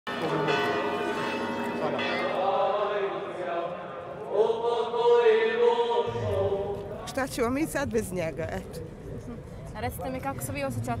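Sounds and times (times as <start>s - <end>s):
church bells ringing: 0.1s - 4.2s.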